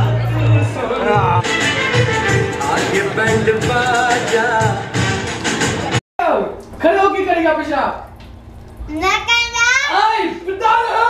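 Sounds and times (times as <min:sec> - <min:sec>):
young boy yelling: 0:08.9 - 0:11.0.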